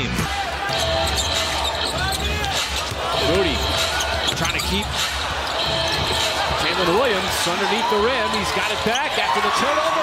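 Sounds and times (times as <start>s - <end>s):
arena crowd noise: 0.0s - 10.0s
basketball dribbling: 0.7s - 7.0s
sneakers squeaking on court: 0.7s - 9.2s.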